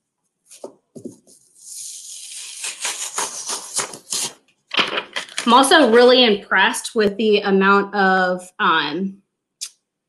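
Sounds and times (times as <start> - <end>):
plastic sheet peeling crackle: 1.7 - 6.0.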